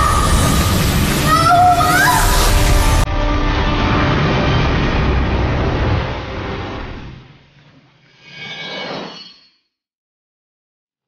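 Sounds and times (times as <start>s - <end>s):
rushing rumble of magical blast: 0.0s - 7.6s.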